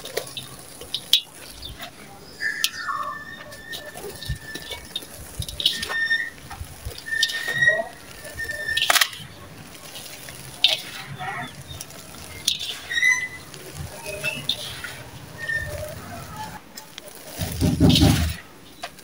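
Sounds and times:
grit falling into steel bowl: 0.0 - 19.0
gritty crunching by hand: 0.0 - 19.0.

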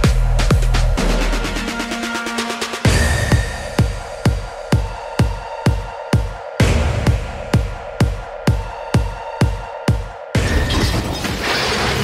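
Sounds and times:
kick drum beat: 0.0 - 1.0, 2.9 - 10.5.

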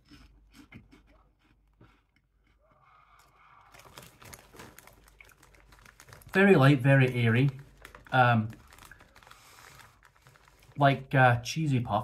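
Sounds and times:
chewing crunchy corn puffs: 0.0 - 10.8.

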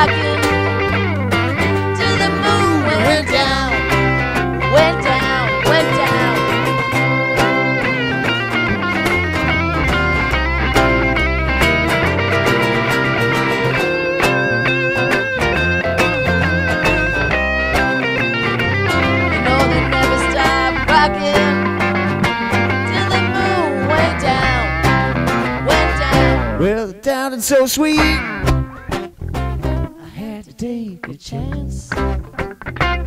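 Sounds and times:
bass: 0.0 - 27.0, 27.9 - 30.0, 31.1 - 33.0
strummed acoustic rhythm guitar: 0.0 - 30.0, 31.0 - 33.0
electric lead guitar riffs: 0.0 - 33.0
steady beat: 3.8 - 26.9.

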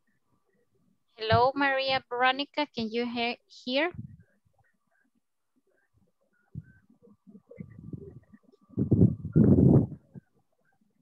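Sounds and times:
muffled noises over video call: 0.0 - 11.0.

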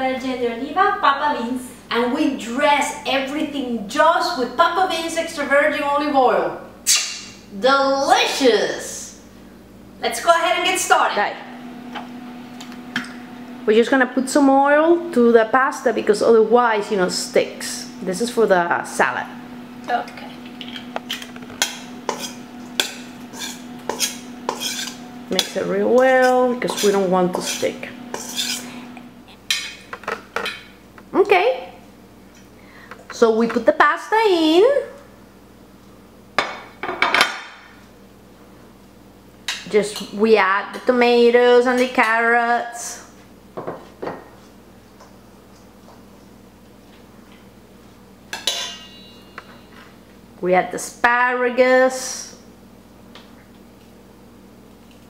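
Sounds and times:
spoon stirring pasta in bowl: 20.5 - 29.9
spoon clinking against metal bowl: 48.3 - 49.8.

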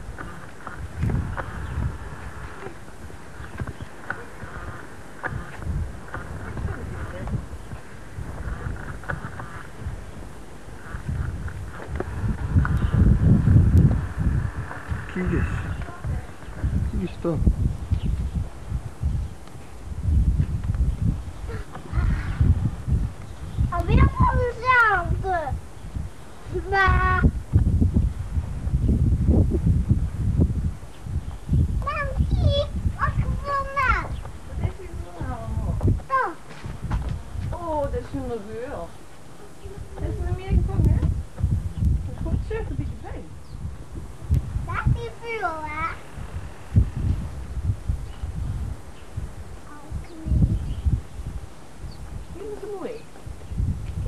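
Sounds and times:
low rumble on microphone: 0.0 - 54.0
footsteps on paving: 35.8 - 37.6.

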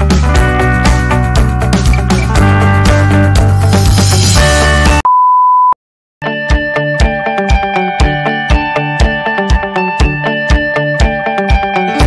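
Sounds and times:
background music with beat: 0.0 - 5.0, 6.2 - 12.0.

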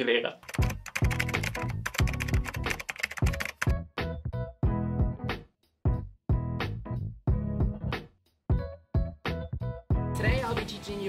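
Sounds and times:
computer keyboard typing: 0.4 - 3.7
background music with bass beat: 3.7 - 10.6.

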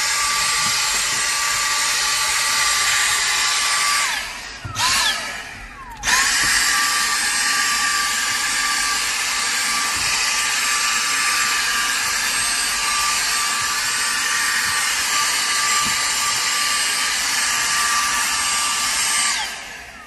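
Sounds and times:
handheld vacuum whining: 0.0 - 20.0
vacuum motor spinning down: 0.0 - 20.0.

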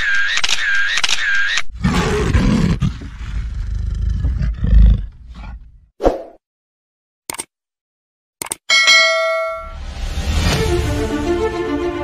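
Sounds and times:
bright bell ding: 8.7 - 9.9
music: 9.7 - 12.0.

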